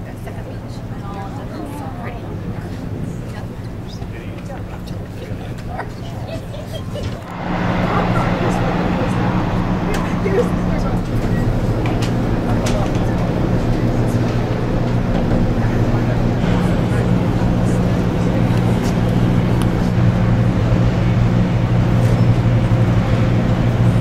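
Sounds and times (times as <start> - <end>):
ship engines humming: 0.0 - 24.0.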